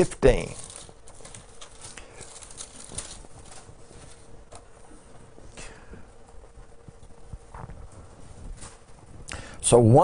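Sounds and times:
paper rustle: 0.0s - 5.4s, 7.0s - 9.1s.

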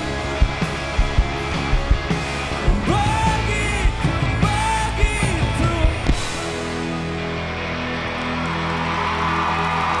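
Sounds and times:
bass guitar: 0.0s - 10.0s
drums: 0.0s - 10.0s
electric guitars: 0.0s - 10.0s.

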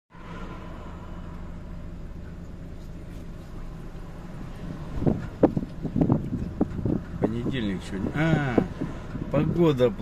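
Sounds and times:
car engine hum from inside cabin: 0.1s - 10.0s.

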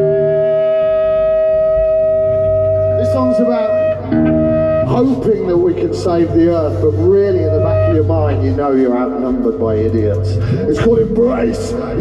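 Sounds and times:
distorted electric guitar droning: 0.0s - 12.0s.

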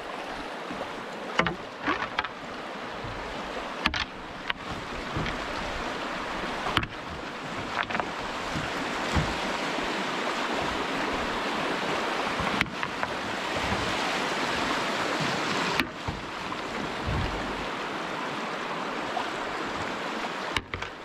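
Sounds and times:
stream water rushing: 0.0s - 21.0s.

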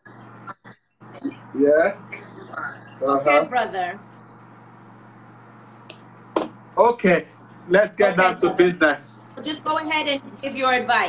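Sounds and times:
low hum and hiss of audio line: 0.0s - 11.0s.

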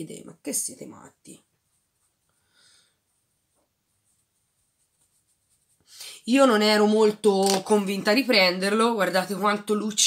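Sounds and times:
make-up brush swishing on skin: 1.5s - 2.4s, 3.0s - 6.6s.

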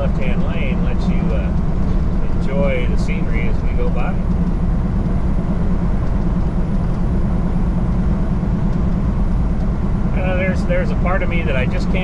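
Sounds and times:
diesel engine drone: 0.0s - 12.0s.

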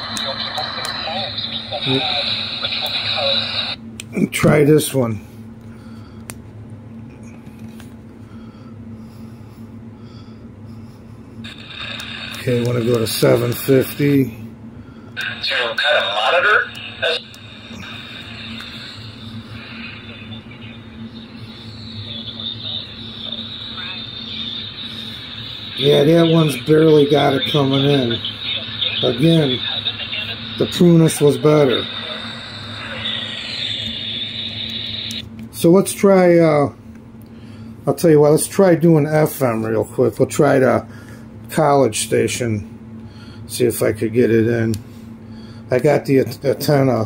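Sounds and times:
faint talk on radio: 0.0s - 3.8s, 15.2s - 35.1s
radio static hiss: 0.0s - 3.8s, 11.4s - 14.4s, 15.2s - 36.5s
low hum: 5.2s - 35.7s.

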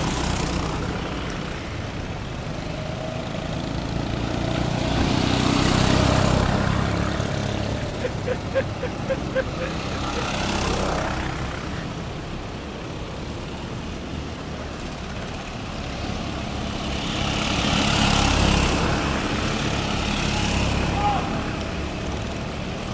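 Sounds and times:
go-kart engines droning: 0.0s - 22.9s.

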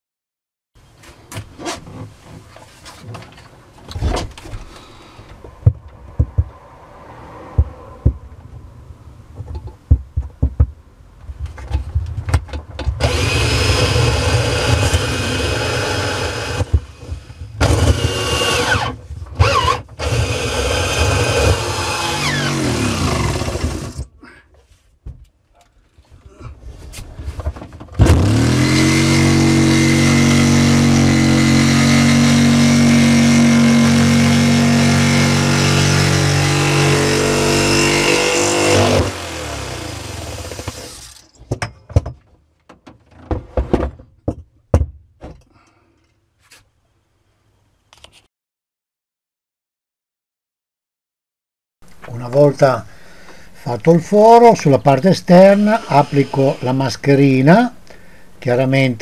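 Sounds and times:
electric drill boring: 13.0s - 24.0s, 28.0s - 41.2s, 55.2s - 58.0s
drill driving hole saw: 13.0s - 24.1s, 28.0s - 41.3s, 54.9s - 58.2s.

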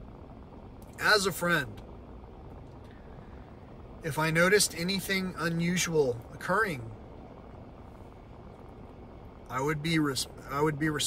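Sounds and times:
vehicle rumble from inside cabin: 0.0s - 11.0s.

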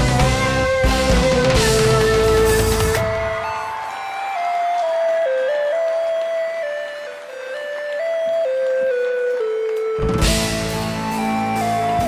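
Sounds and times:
electronic keyboard melody: 0.0s - 12.0s.

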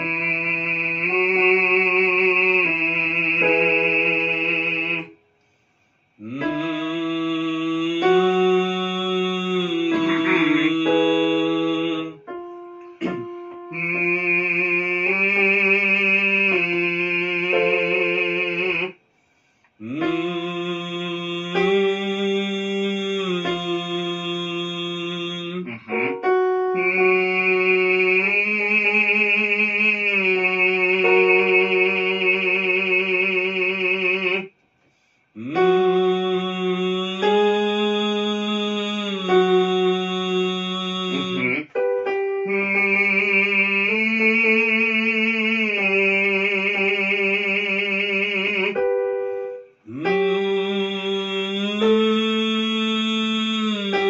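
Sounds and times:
electronic keyboard chords: 0.0s - 5.2s, 6.2s - 18.9s, 19.8s - 34.4s, 35.4s - 54.0s.

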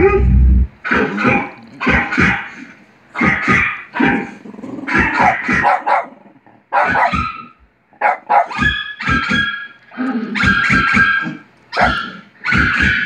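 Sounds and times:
low rumble: 0.0s - 0.8s
dog barking: 0.9s - 2.5s, 3.2s - 4.3s, 4.9s - 9.5s, 10.4s - 13.0s.

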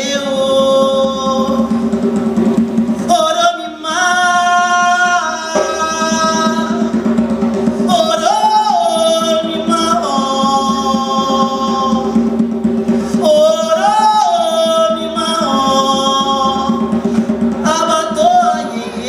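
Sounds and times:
hand drum and drum kit: 0.0s - 19.0s
person singing long notes: 3.0s - 7.2s, 7.8s - 12.4s, 13.1s - 19.0s.

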